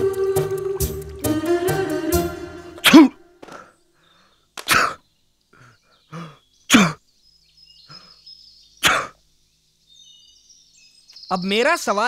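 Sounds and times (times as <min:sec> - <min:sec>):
person sneezing: 0:02.8 - 0:03.7, 0:04.6 - 0:05.0, 0:06.2 - 0:07.0, 0:08.8 - 0:09.2.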